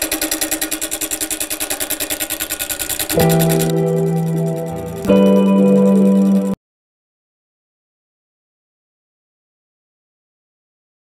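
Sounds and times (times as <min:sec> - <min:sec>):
lathe tool chattering on wood: 0:00.0 - 0:05.2
music with guitar chords: 0:03.1 - 0:06.6.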